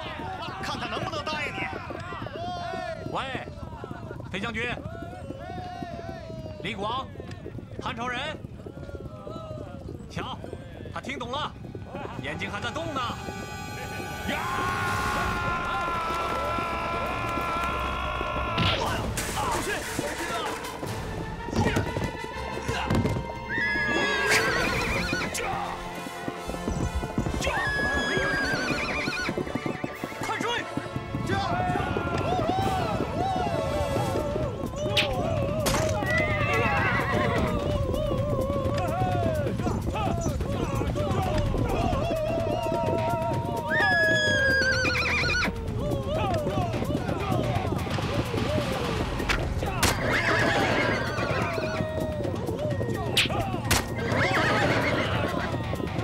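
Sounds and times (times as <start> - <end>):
hooves thudding on turf: 0.0 - 18.9, 19.6 - 56.0
horses neighing: 0.0 - 56.0.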